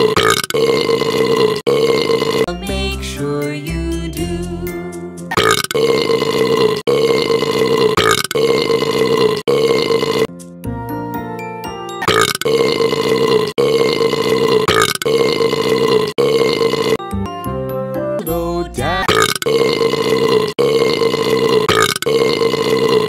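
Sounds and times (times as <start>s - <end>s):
long human burps: 0.0s - 2.5s, 5.3s - 10.3s, 12.0s - 17.0s, 19.0s - 23.0s
children's song music: 2.5s - 5.4s, 10.3s - 12.1s, 17.0s - 19.1s.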